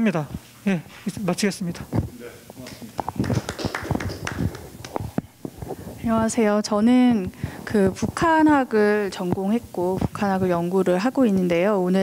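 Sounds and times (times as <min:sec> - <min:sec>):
microphone handling thumps: 0:01.9 - 0:10.6.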